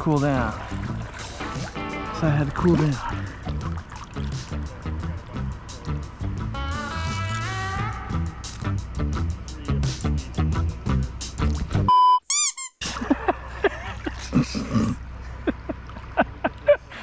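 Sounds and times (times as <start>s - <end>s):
splashing in river: 0.0s - 4.6s
upbeat background music: 0.0s - 11.9s
squeaky pitch-glide sound effects: 6.6s - 8.0s, 12.3s - 12.8s
electronic beep: 11.9s - 12.7s.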